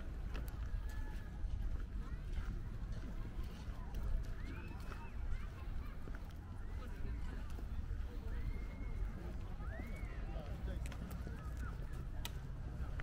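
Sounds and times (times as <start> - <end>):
distant voices: 0.0 - 13.0
faint footsteps: 0.0 - 13.0.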